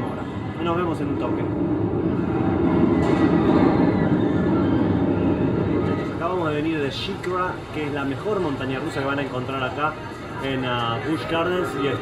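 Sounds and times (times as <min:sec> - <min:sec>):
roller coaster rumbling on track: 0:00.0 - 0:12.0.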